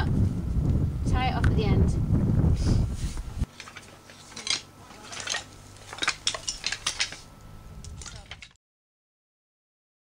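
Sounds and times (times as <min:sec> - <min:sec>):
slate pieces clinking underfoot: 0:03.5 - 0:08.6.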